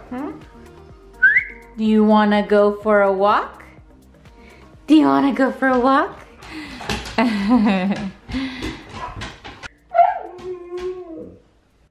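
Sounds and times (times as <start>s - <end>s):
dog whining: 9.9s - 11.4s.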